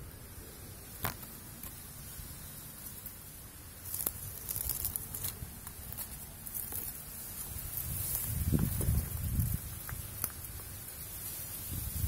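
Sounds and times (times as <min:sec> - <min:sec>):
dry reeds rustling and crackling: 0:00.0 - 0:12.0
twig snapping: 0:03.8 - 0:07.0, 0:09.4 - 0:10.7.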